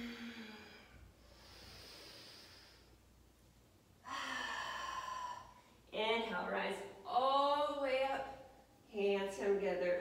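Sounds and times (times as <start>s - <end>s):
woman sighing: 4.0s - 5.7s.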